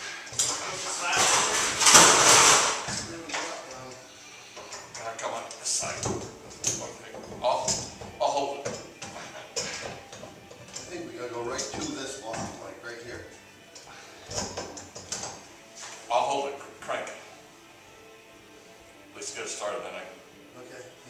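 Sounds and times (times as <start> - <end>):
background music: 0.0 - 21.0
men talking indistinctly: 0.4 - 9.8, 10.8 - 13.4.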